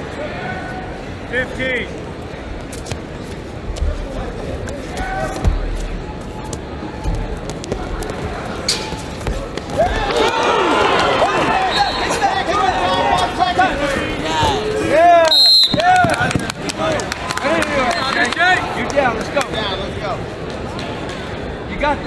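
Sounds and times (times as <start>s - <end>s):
shoes squeaking on a mat: 2.7s - 10.1s
arena voices: 8.2s - 19.7s.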